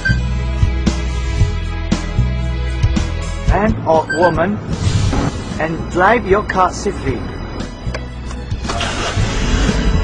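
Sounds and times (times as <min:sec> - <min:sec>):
background music: 0:00.0 - 0:10.0
car engine starting: 0:06.7 - 0:10.0.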